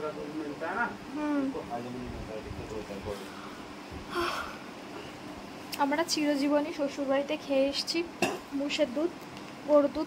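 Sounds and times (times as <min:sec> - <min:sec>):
woman talking: 0:05.7 - 0:10.0.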